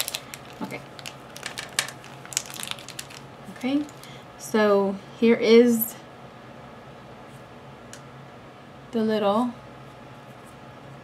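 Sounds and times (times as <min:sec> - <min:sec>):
small objects rummaged through: 0:00.0 - 0:04.1.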